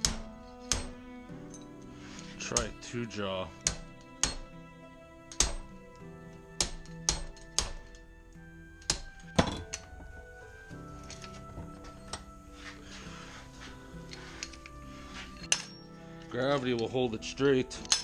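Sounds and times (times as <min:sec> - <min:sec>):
background music: 0:00.0 - 0:18.0
metal knocks and clinks: 0:06.6 - 0:08.0, 0:08.9 - 0:10.0, 0:15.4 - 0:16.0.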